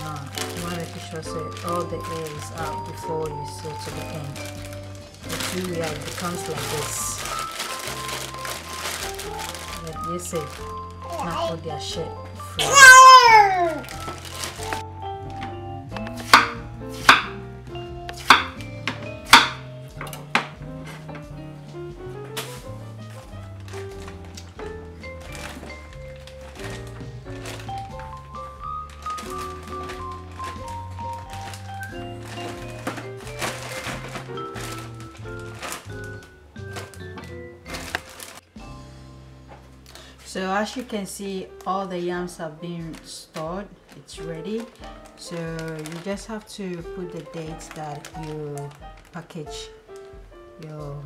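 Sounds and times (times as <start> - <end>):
background music with bass line: 13.6 - 39.9
knife chopping on wooden board: 16.1 - 17.4, 18.2 - 20.6.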